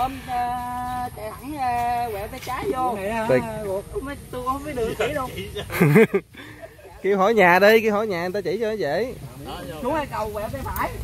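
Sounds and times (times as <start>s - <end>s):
men talking in background: 4.7s - 11.0s.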